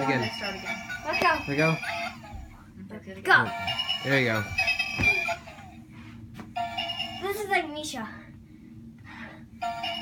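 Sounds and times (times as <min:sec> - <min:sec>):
toy electronic chiming tune: 0:09.6 - 0:10.0.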